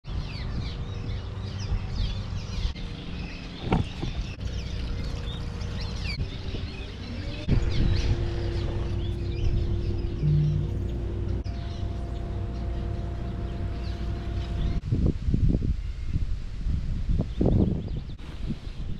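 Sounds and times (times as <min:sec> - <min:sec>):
birds chirping rapidly: 0:00.0 - 0:14.8
background music with held notes: 0:07.6 - 0:14.8.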